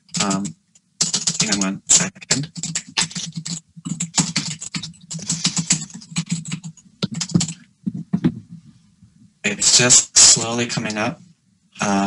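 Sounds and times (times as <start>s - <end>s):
typing on computer keyboard: 0.0s - 8.4s.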